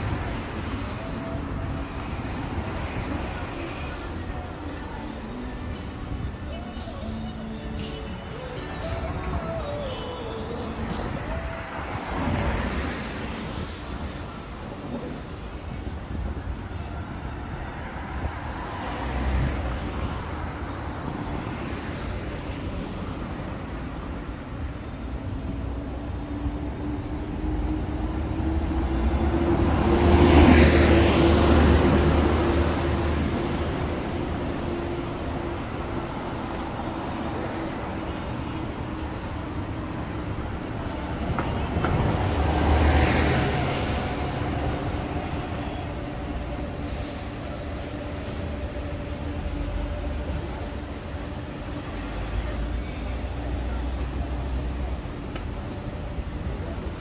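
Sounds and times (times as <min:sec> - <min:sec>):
street traffic noise: 0:00.0 - 0:57.0
vehicles passing close by: 0:00.0 - 0:57.0.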